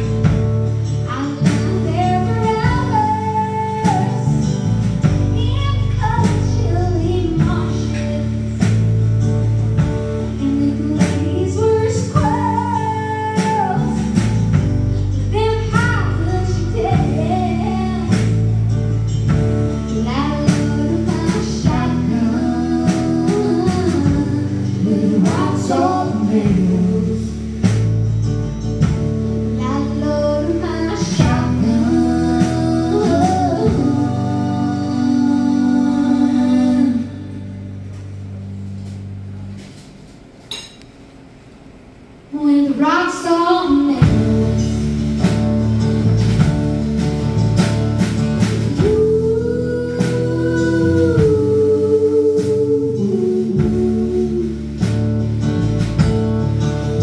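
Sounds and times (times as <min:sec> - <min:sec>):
woman singing lead: 0:00.0 - 0:09.0, 0:10.3 - 0:27.9, 0:29.6 - 0:37.7, 0:42.3 - 0:45.5, 0:48.1 - 0:55.1
electric guitar: 0:00.0 - 0:40.5, 0:43.3 - 0:57.0
electric bass: 0:00.0 - 0:57.0
live band music: 0:00.0 - 0:57.0.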